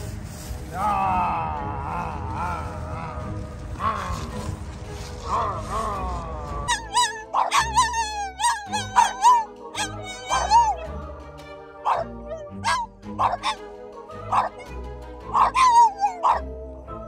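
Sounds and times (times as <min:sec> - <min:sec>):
background music with low notes: 0:00.0 - 0:17.0
dogs howling: 0:05.3 - 0:16.6.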